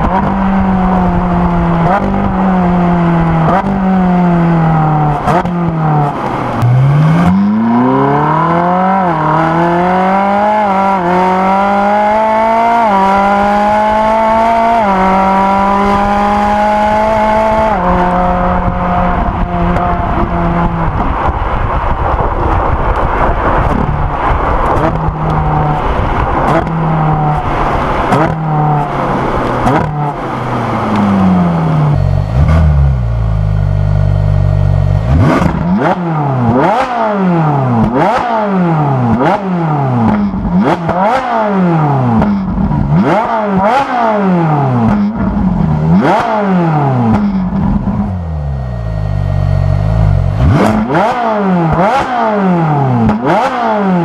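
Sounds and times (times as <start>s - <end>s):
exhaust crackles: 0.0s - 11.8s, 13.2s - 54.0s
sports car engine revving: 0.0s - 54.0s.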